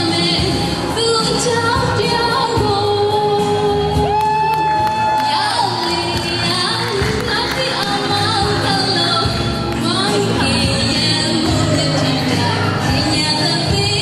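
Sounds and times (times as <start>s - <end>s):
pop backing music: 0.0s - 14.0s
woman singing into a microphone: 0.0s - 14.0s.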